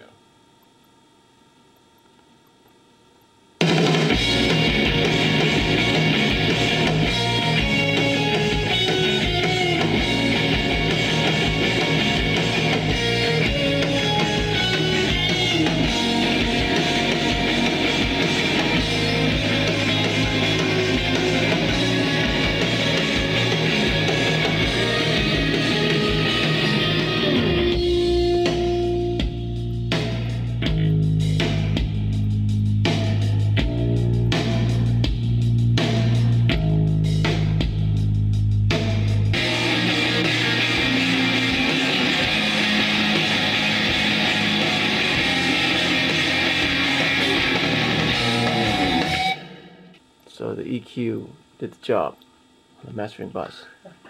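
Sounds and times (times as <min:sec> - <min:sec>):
rock band instrumental: 0:03.6 - 0:50.0.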